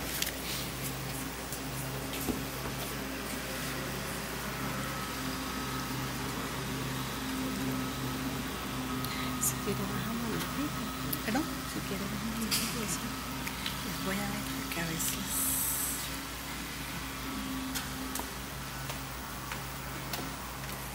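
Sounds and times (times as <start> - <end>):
steady electrical hum: 0.0 - 20.9.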